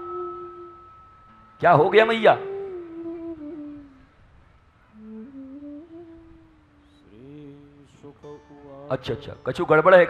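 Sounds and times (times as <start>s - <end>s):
person humming: 0.0s - 0.9s, 2.3s - 4.1s, 4.9s - 8.9s.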